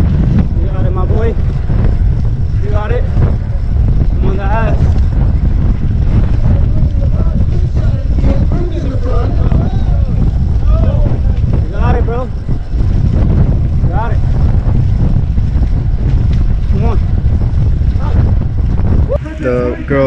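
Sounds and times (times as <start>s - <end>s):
wind rushing over microphone: 0.0s - 20.0s.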